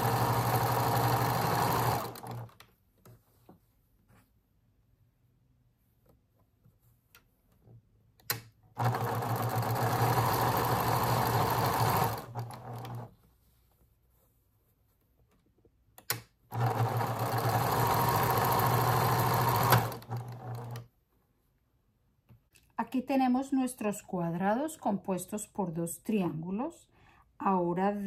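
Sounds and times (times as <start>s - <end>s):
sewing machine stitching: 0.0s - 2.6s, 8.3s - 13.1s, 16.1s - 20.9s.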